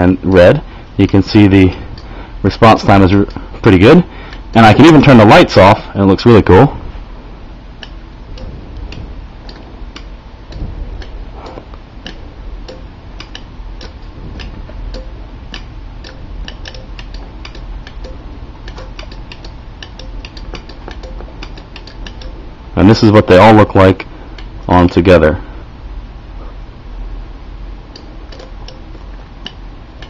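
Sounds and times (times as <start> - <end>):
faint steady hum: 0.0 - 30.0
relays clicking: 7.8 - 22.4, 27.9 - 30.0.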